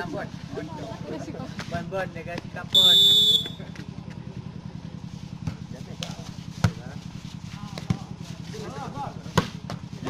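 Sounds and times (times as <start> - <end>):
referee's whistle blast: 2.8 - 3.6.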